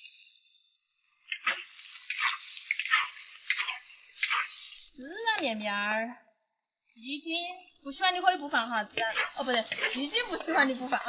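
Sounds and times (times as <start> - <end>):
food sizzling: 0.0 - 5.6, 7.9 - 11.0.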